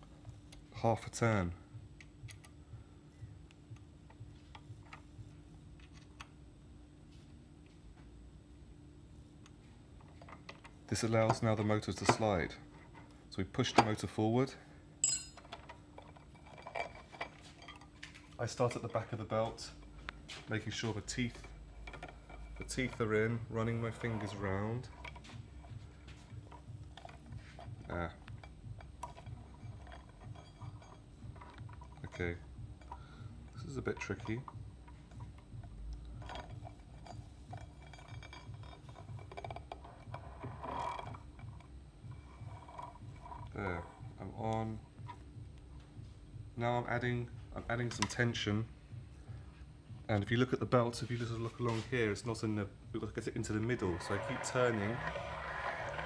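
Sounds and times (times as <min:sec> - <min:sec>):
metal tool clinking on metal: 0:15.0 - 0:15.7
belt clicking and rubbing on pulley: 0:20.7 - 0:45.3, 0:53.4 - 0:56.0.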